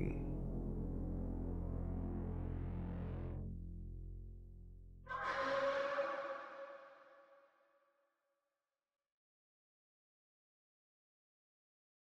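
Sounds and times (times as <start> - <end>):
low drone: 0.0 - 5.0.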